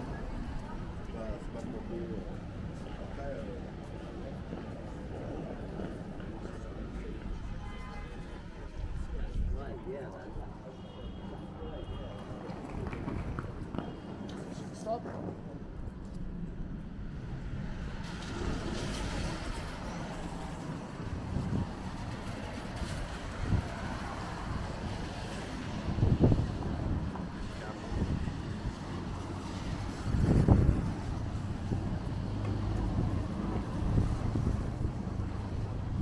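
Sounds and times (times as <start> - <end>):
passers-by talking: 0.0 - 36.0
traffic on wet roads: 0.0 - 36.0.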